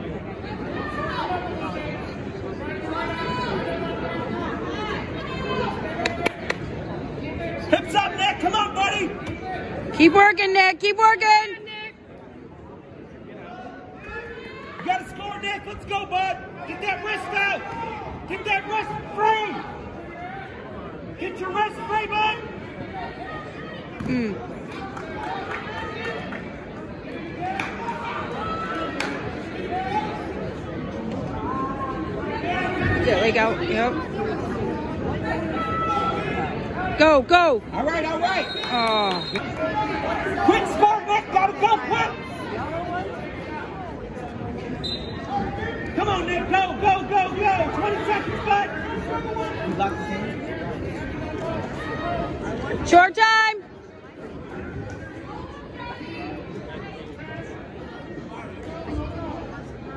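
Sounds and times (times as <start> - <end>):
crowd chatter: 0.0 - 59.9.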